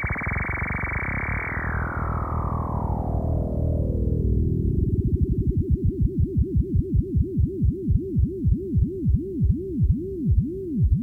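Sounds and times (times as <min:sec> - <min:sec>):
synthesizer tone swooping: 0:00.0 - 0:10.8.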